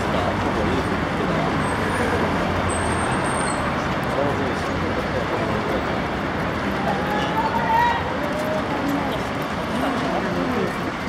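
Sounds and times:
crowd voices: 0.0 - 11.0
echoing traffic noise: 0.0 - 11.0.

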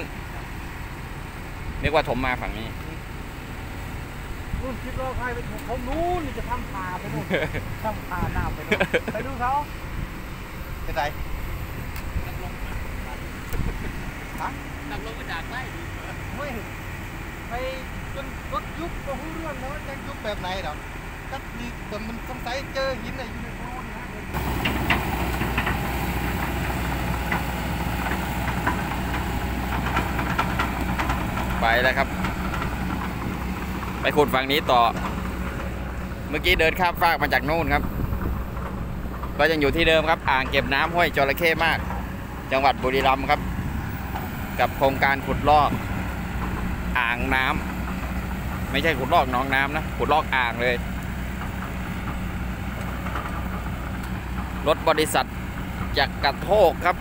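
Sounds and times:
diesel engine idling: 0.0 - 57.0.

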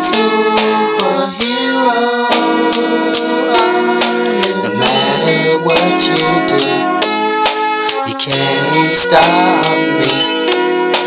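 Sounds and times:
instrumental backing track with beat: 0.0 - 11.0.

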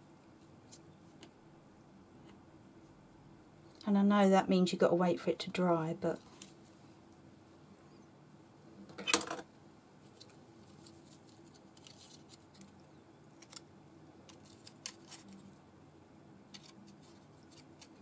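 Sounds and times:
faint room hum: 0.0 - 18.0
paper rustling and clicks: 10.1 - 12.8, 13.4 - 15.5, 16.5 - 18.0.

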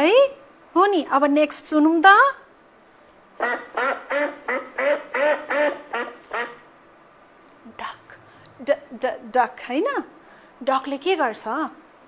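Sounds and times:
duck quacking: 3.4 - 6.6.

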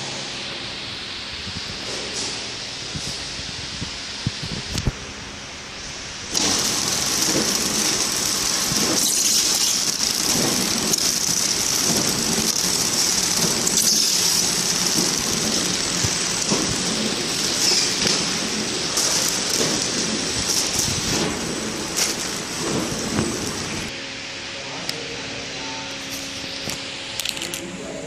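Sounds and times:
packing machine hissing: 5.5 - 24.0
machine sharp clicks: 6.3 - 23.9.

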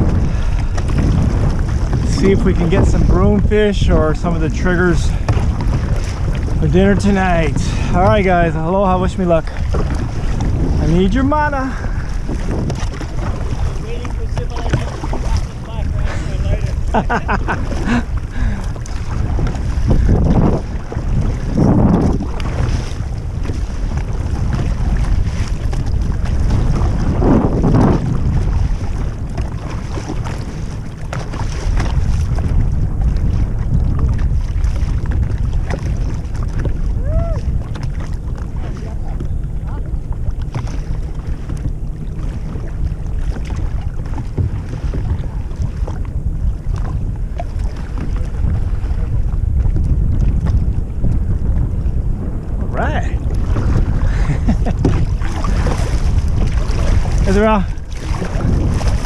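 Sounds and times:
water sloshing against kayak: 0.0 - 59.0
wind buffeting microphone: 0.0 - 59.0.

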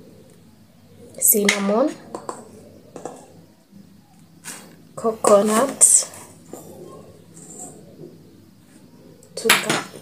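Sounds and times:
woman speaking: 1.2 - 2.1, 5.0 - 6.2, 9.4 - 10.0.

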